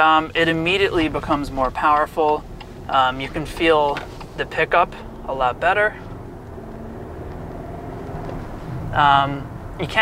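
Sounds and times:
car engine hum: 0:00.0 - 0:10.0
tyre and road noise: 0:00.0 - 0:10.0.

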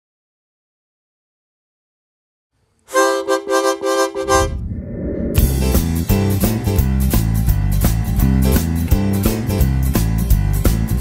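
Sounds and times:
repeated chord figure: 0:02.9 - 0:04.5
band with bass and drums: 0:05.4 - 0:11.0.

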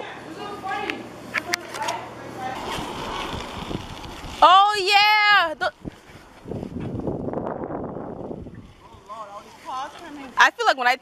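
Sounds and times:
bicycle rolling rush: 0:02.2 - 0:10.4.

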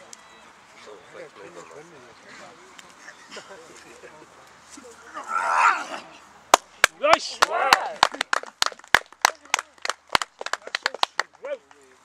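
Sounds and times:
spectators clapping: 0:06.5 - 0:11.9.

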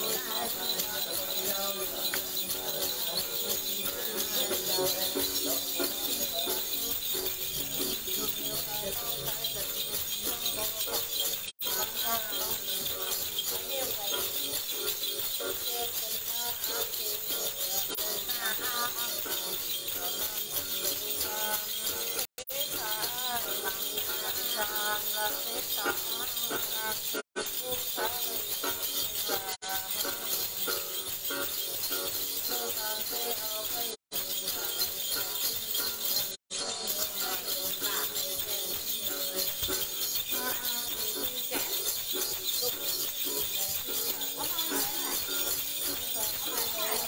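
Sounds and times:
jingle bells shaking: 0:00.0 - 0:47.0
woman chanting: 0:00.0 - 0:47.0.

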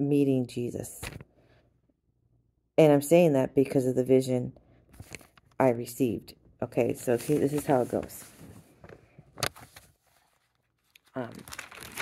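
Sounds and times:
crinkling handling noise: 0:04.9 - 0:05.6, 0:07.0 - 0:12.0.

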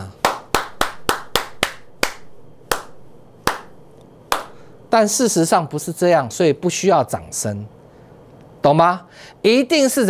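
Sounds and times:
man clapping hands: 0:00.0 - 0:04.6.

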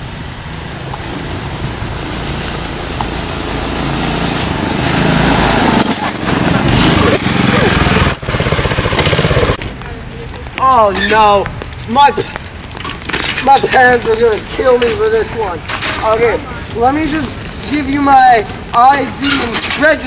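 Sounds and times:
go-kart engine running: 0:01.0 - 0:09.7.

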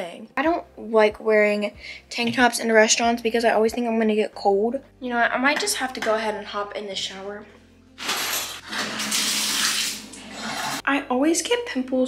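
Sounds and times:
water running from bathtub tap: 0:08.0 - 0:10.8.

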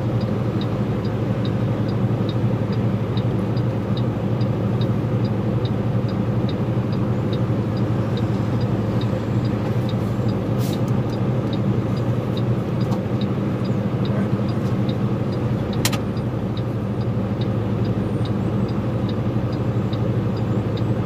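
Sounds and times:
turn signal relay ticking: 0:00.0 - 0:21.0
vehicle engine idling: 0:00.0 - 0:21.0
passing car hiss: 0:10.5 - 0:10.9.

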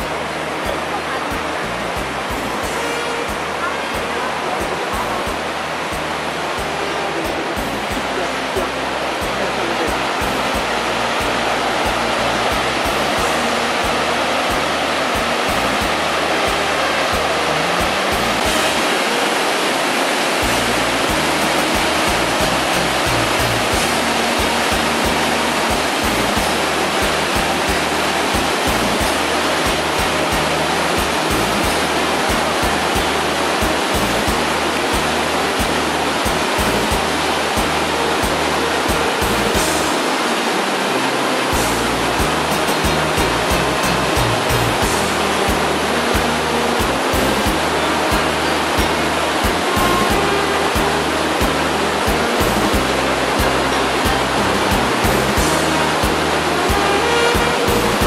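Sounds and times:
music: 0:00.0 - 0:58.0
stream rushing over boulders: 0:00.0 - 0:58.0.

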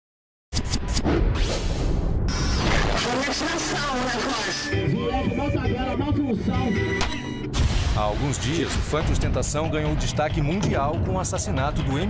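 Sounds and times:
background music: 0:03.2 - 0:12.0.

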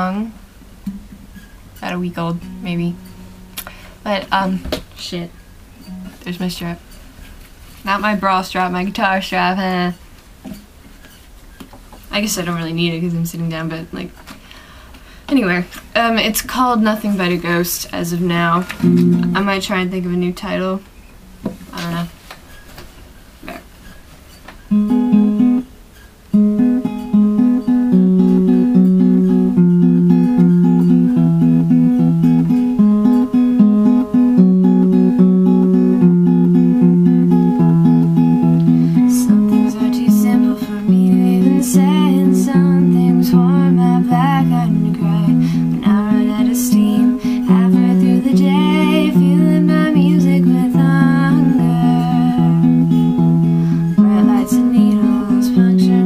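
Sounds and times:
acoustic guitar picking chords: 0:00.0 - 0:11.1, 0:15.3 - 0:22.2, 0:23.4 - 0:56.0.

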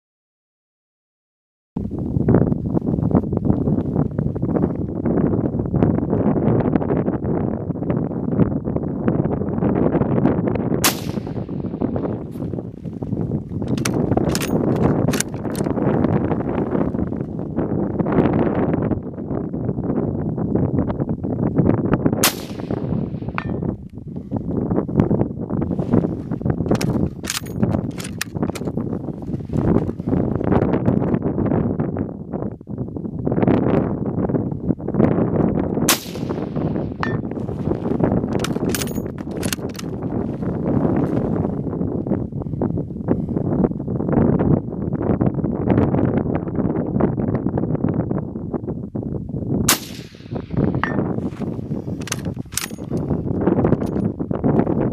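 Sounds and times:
wind on microphone: 0:01.8 - 0:54.9
rifle shots: 0:10.8 - 0:11.6, 0:22.2 - 0:23.6, 0:35.9 - 0:37.2, 0:49.7 - 0:50.7
rifle bolt clicking: 0:13.7 - 0:15.7.

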